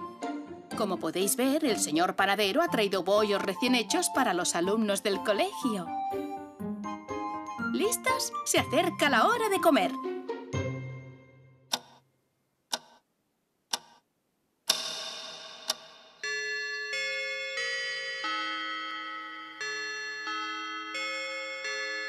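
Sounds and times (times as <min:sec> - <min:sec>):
cartoon clock ticking: 0:11.7 - 0:12.0, 0:12.7 - 0:13.1, 0:13.7 - 0:16.9
bell-like chime tune: 0:16.2 - 0:22.0.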